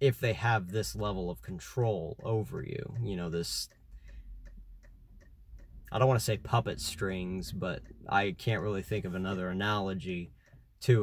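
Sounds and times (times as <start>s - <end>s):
faint even ticking: 0.0s - 11.0s
low steady hum: 0.0s - 11.0s.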